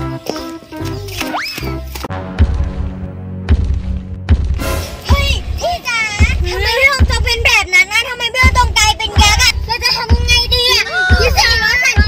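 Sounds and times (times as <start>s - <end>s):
low thumping beat: 2.1s - 12.0s.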